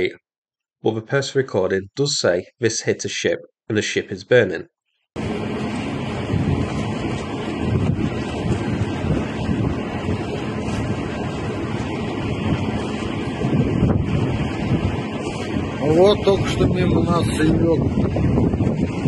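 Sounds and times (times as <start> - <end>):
wind rushing over microphone: 5.2 - 19.0.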